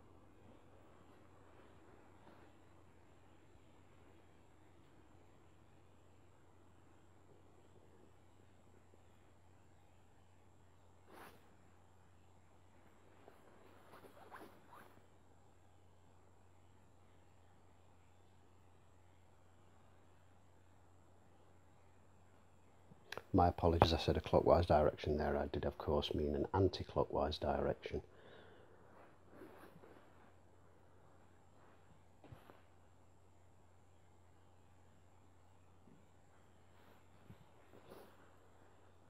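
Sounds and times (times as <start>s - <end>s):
steady low hum: 0.0s - 39.0s
faint scrape: 11.0s - 11.5s, 28.3s - 30.4s, 36.7s - 38.9s.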